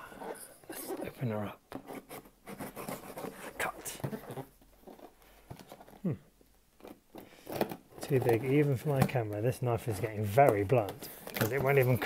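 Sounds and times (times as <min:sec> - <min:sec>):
small scratches and taps: 0:00.7 - 0:06.0, 0:06.8 - 0:12.0.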